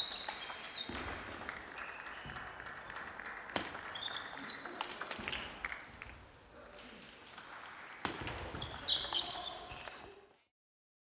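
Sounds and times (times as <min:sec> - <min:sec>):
brief high squeaks: 0:08.6 - 0:10.1.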